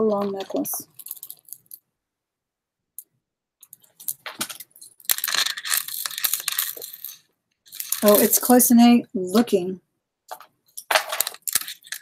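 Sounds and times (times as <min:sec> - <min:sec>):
beads clicking and rattling: 0:00.2 - 0:01.8, 0:03.6 - 0:08.6, 0:10.3 - 0:12.0.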